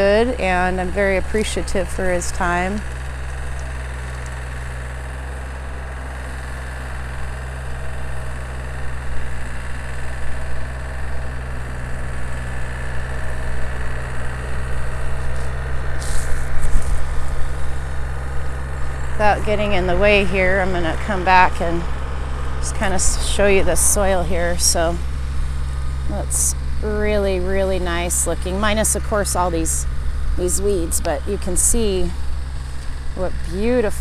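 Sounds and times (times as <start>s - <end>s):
tractor engine running: 0.0s - 34.0s.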